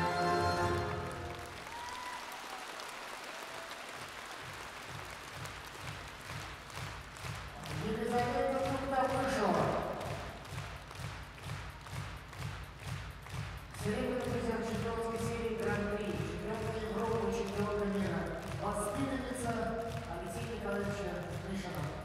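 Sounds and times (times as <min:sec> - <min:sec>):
string music: 0:00.0 - 0:01.6
audience rhythmic clapping: 0:00.0 - 0:22.0
person's voice: 0:07.6 - 0:09.9, 0:13.8 - 0:22.0.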